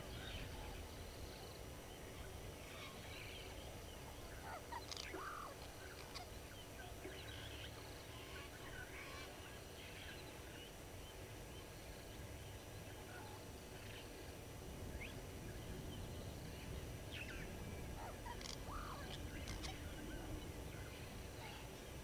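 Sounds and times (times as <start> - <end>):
wild birds calling: 0.0 - 14.4, 16.2 - 22.0
low background rumble: 0.0 - 22.0.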